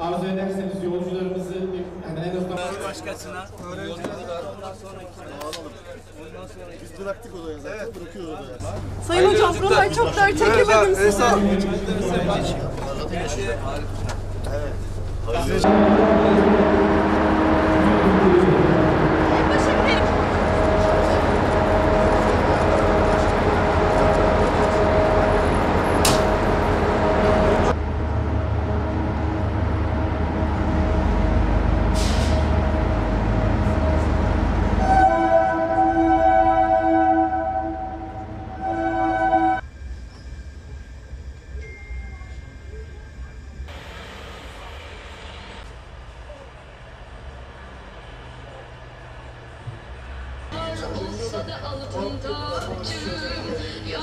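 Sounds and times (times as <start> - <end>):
crowd talking: 1.2 - 26.3, 50.5 - 54.0
locomotive engine running: 8.6 - 41.6
train horn blast: 15.6 - 27.8, 32.0 - 39.6.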